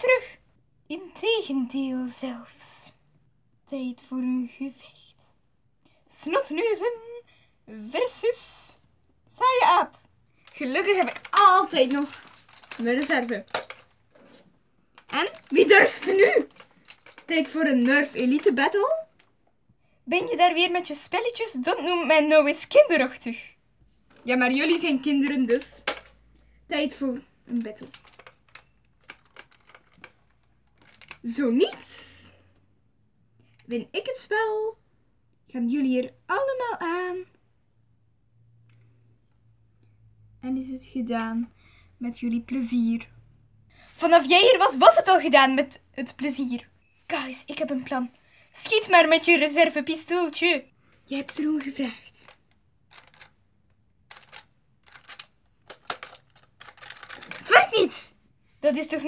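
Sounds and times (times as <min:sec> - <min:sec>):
plastic toy blaster clacking: 0:10.6 - 0:13.8, 0:15.0 - 0:18.5, 0:25.6 - 0:26.1, 0:54.1 - 0:57.8.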